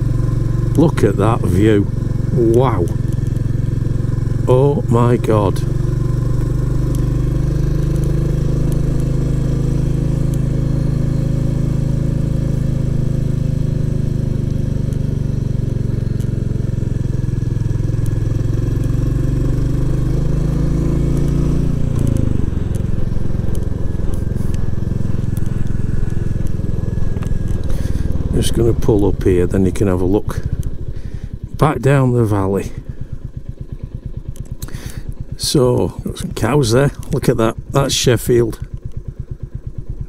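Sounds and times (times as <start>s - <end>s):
motorcycle engine running: 0.0s - 40.0s.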